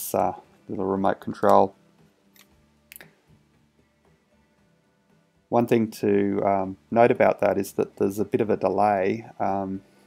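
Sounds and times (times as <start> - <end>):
faint music playback: 0.0 - 10.0.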